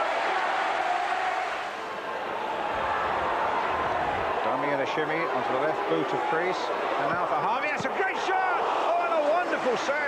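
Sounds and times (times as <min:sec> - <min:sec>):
stadium crowd din: 0:00.0 - 0:10.0
man commentating: 0:04.5 - 0:10.0.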